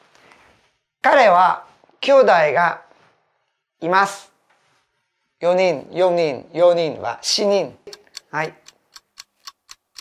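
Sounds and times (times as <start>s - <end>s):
clock ticking: 7.8s - 10.0s.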